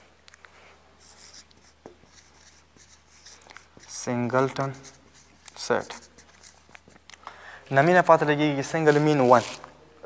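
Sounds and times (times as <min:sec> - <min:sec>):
marker writing on whiteboard: 0:01.0 - 0:07.2
light marker taps: 0:01.3 - 0:07.2.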